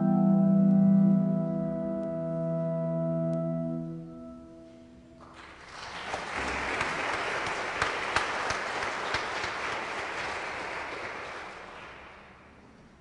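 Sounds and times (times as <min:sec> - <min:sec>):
music: 0:00.0 - 0:05.4
audience applauding: 0:05.2 - 0:12.8.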